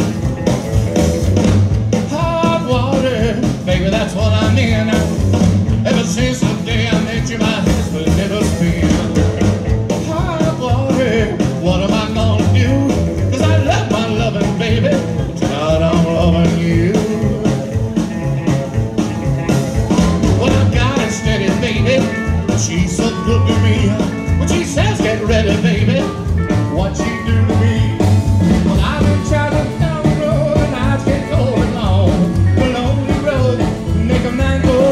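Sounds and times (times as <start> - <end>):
acoustic rhythm guitar: 0.0 - 34.9
electric lead guitar: 0.0 - 34.9
slapped upright bass: 0.0 - 34.9.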